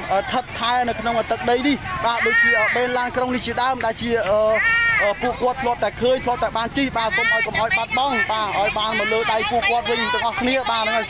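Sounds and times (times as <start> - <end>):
person talking: 5.2 - 11.0.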